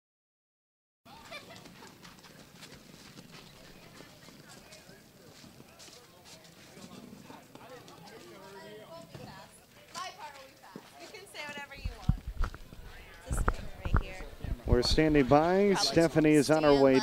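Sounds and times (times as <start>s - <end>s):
distant voices chattering: 1.1s - 17.0s.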